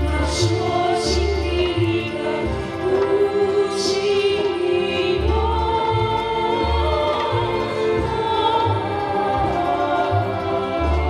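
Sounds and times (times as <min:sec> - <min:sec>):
live band with sustained singing: 0:00.0 - 0:11.0.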